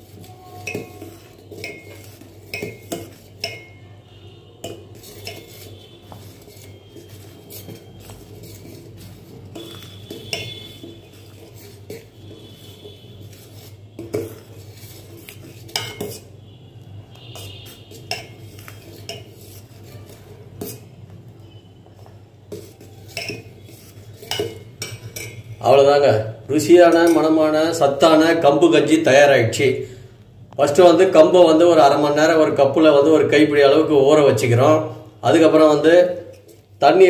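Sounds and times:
metal spoon clinking in a pot: 0.5 - 3.9, 4.6 - 8.9, 9.5 - 12.7, 13.3 - 16.3, 17.4 - 19.9, 22.6 - 25.6.

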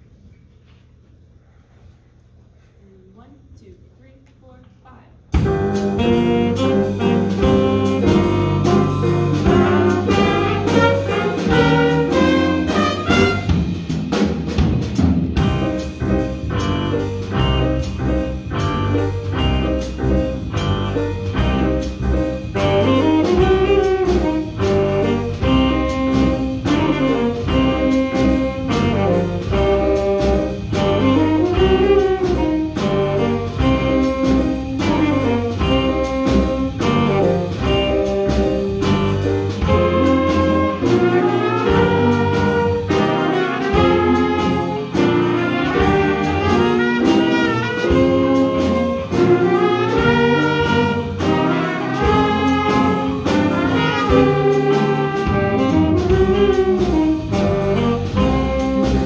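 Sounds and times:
drum hits: 5.3 - 59.0
jazz band playing: 5.3 - 59.0
saxophones and trumpets: 5.5 - 14.0, 15.4 - 59.0.

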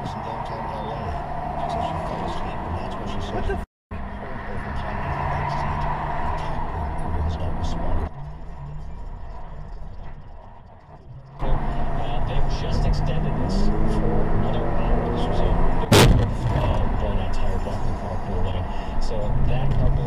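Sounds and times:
car engine and road hum: 0.0 - 20.0.

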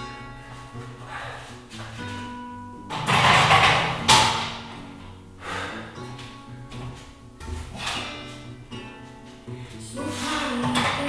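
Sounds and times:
acoustic guitar music: 0.0 - 11.0.

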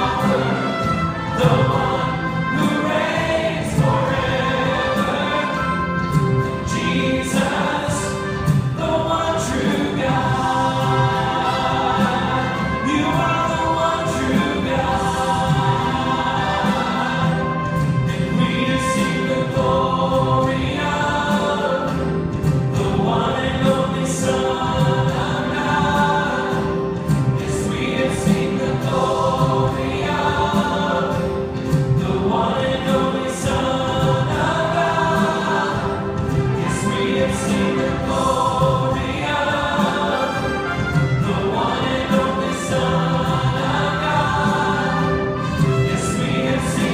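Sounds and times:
band playing: 0.0 - 46.9
choir singing worship song: 0.0 - 46.9.

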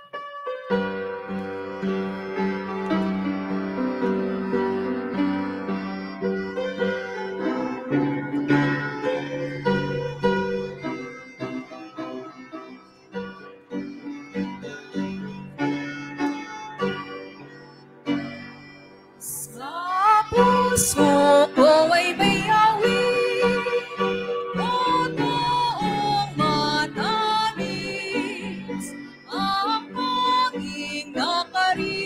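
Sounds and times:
piano and keyboard playing chords: 0.0 - 32.0
person singing: 19.2 - 32.0.

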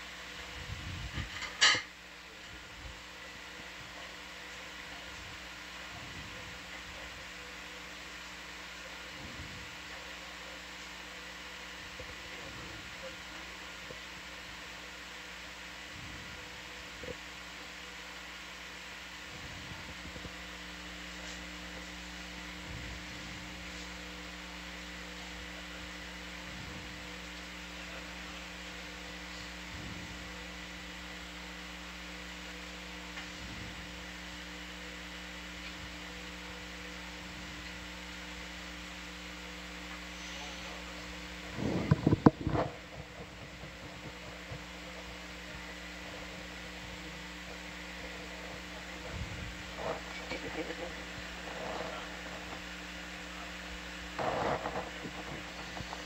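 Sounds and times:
electrical hum: 0.0 - 56.0
crackling knocks: 41.6 - 46.7, 54.1 - 56.0.

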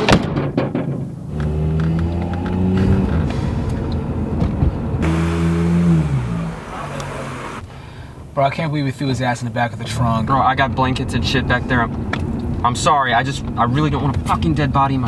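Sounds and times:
road noise inside car: 1.1 - 7.7
car engine revving: 4.9 - 7.7.

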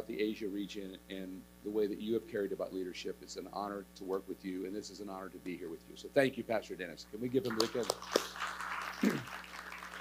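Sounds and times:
congregation applauding: 7.5 - 10.0.

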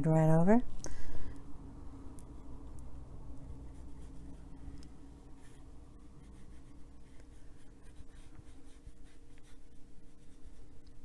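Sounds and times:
faint steady hum: 0.0 - 11.0
brush stroking paper: 5.3 - 10.8.

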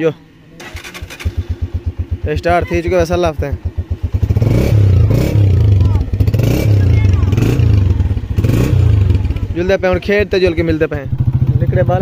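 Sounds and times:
motorcycle engine revving: 0.6 - 12.0.

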